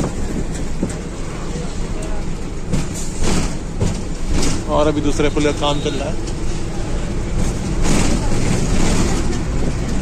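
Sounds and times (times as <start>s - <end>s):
bus rumbling: 0.0s - 10.0s.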